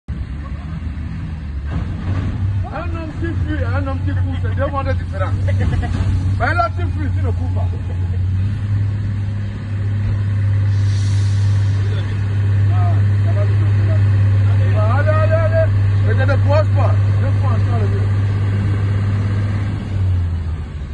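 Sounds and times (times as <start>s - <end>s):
bystanders' voices: 0.1s - 19.4s
truck diesel engine droning: 0.1s - 20.9s.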